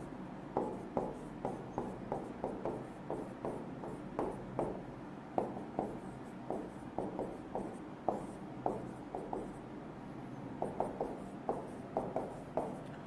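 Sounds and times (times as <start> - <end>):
marker pen writing on a whiteboard: 0.0 - 9.6, 10.6 - 13.0.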